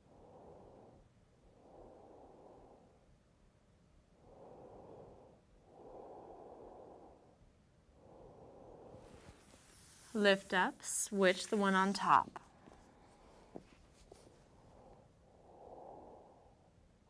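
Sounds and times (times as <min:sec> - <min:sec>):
person breathing slowly: 0:00.0 - 0:03.1, 0:04.2 - 0:10.2, 0:12.5 - 0:16.8.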